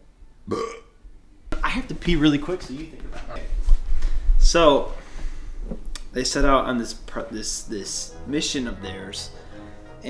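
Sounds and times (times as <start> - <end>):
man burping: 0.5 - 1.0.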